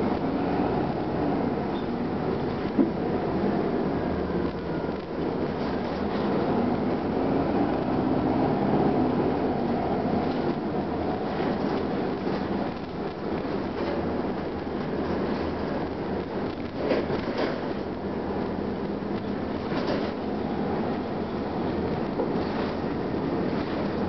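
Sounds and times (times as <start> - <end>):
bus diesel engine running: 0.0 - 24.0
road noise: 0.0 - 24.0.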